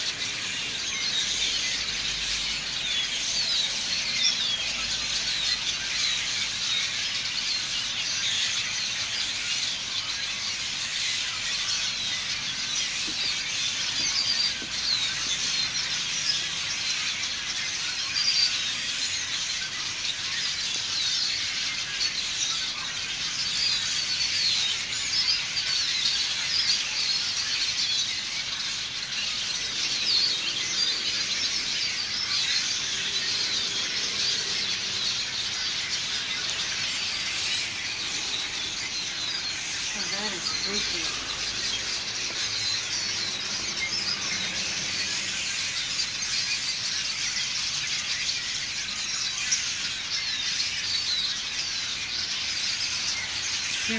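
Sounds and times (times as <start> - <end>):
flock of birds chattering: 0.0 - 53.9.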